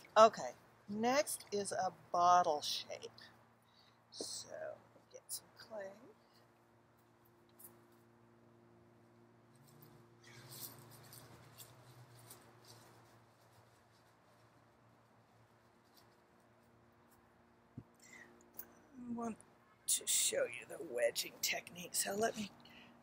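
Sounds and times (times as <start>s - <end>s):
faint rustling: 9.1s - 18.7s.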